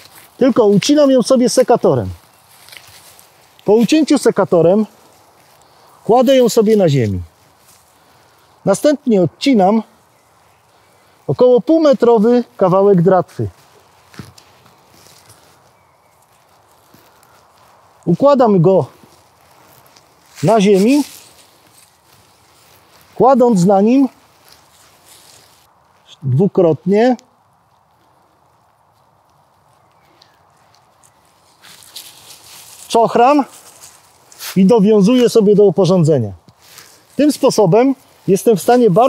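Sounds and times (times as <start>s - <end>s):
pruning shears snipping twine: 0.0s - 4.3s
rustling of clothing and grass: 0.0s - 39.0s.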